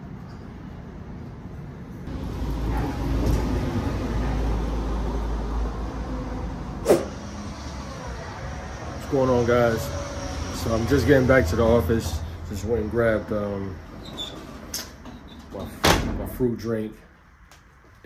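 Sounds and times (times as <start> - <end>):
vehicle passing with low rumble: 0.8 - 14.0.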